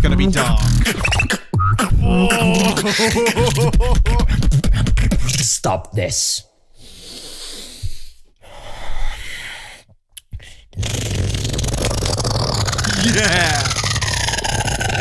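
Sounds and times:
growling vocal line: 0:02.0 - 0:03.0, 0:10.8 - 0:15.0
breathy hissing beatboxing: 0:02.5 - 0:05.4, 0:10.7 - 0:15.0.

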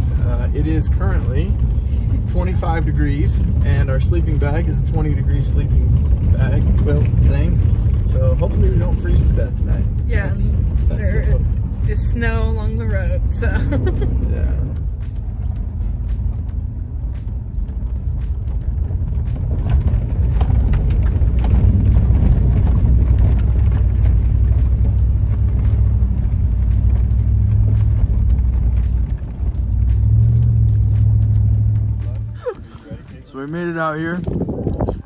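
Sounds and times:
car engine and road rumble: 0:00.0 - 0:35.0
knocks and rattles from bumps: 0:15.0 - 0:32.1.

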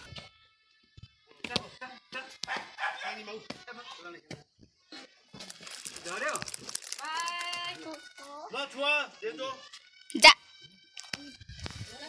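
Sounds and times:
dog barking: 0:02.4 - 0:03.4.

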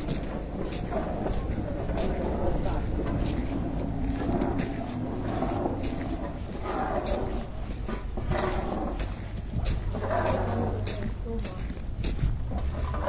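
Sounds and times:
person talking indistinctly: 0:00.0 - 0:13.0
wind buffeting microphone: 0:00.0 - 0:13.0.

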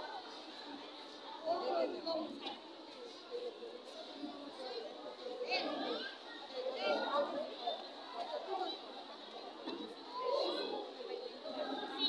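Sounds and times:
girls chattering and calling out: 0:00.0 - 0:12.0.

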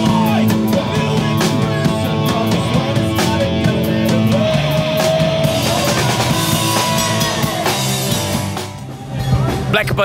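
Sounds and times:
distorted electric guitar: 0:00.0 - 0:10.0
drum kit: 0:00.0 - 0:10.0
hardcore punk band playing: 0:00.0 - 0:10.0.

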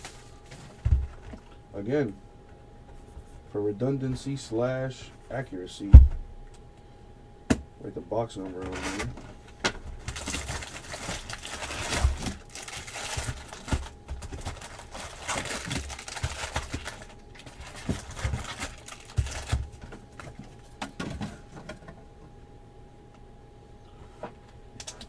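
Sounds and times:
cardboard flaps rustling: 0:10.0 - 0:21.8.

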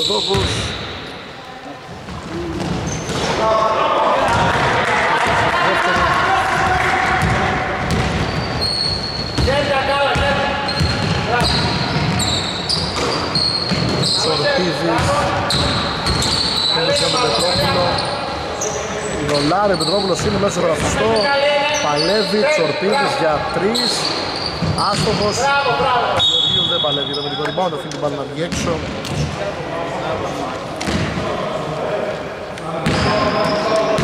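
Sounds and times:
sneakers squeaking: 0:00.0 - 0:03.6, 0:07.1 - 0:29.4, 0:32.8 - 0:34.0
basketball bouncing on wooden court: 0:07.1 - 0:08.6, 0:09.3 - 0:14.1, 0:32.8 - 0:33.2.

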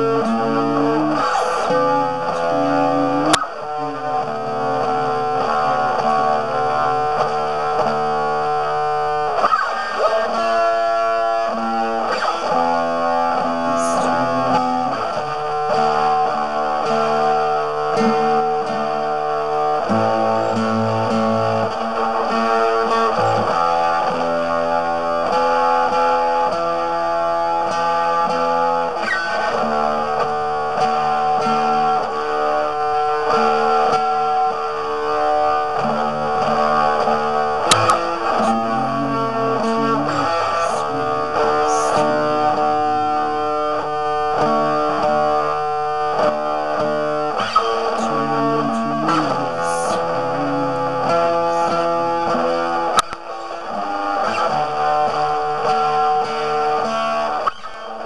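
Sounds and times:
guitar ringing chords: 0:00.0 - 0:58.0.

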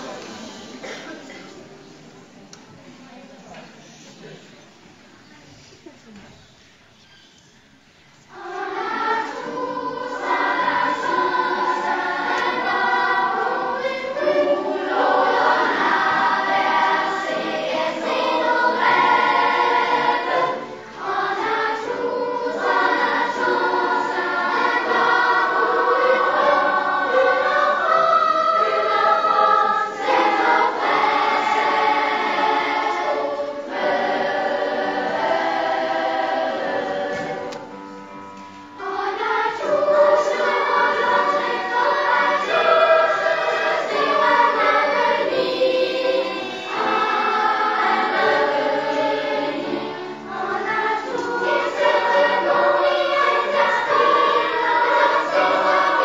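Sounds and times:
children's choir singing: 0:00.0 - 0:03.2, 0:07.4 - 0:56.0.

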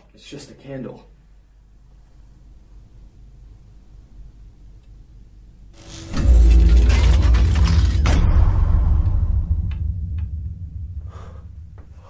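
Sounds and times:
mechanical rumble and grinding: 0:05.8 - 0:11.8.

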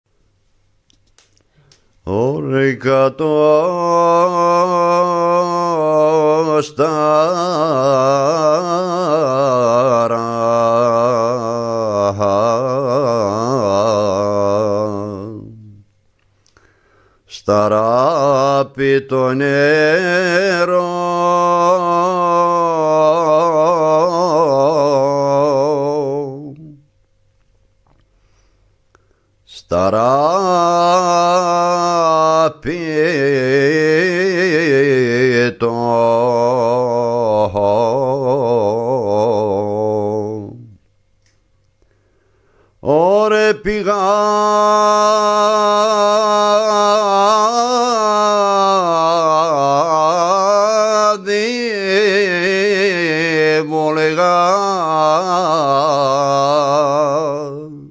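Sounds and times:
man singing unaccompanied: 0:02.0 - 0:16.0, 0:17.3 - 0:26.9, 0:29.4 - 0:40.9, 0:42.8 - 0:57.9.

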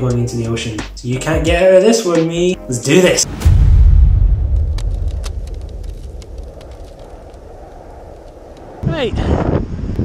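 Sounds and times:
deep rumbling boom: 0:03.2 - 0:09.7
low hum: 0:03.3 - 0:10.0
faint crackles: 0:04.4 - 0:08.8.

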